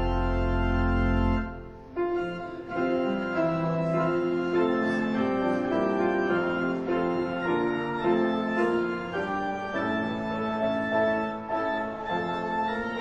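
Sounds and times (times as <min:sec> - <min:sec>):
church organ playing a hymn: 0:00.0 - 0:13.0.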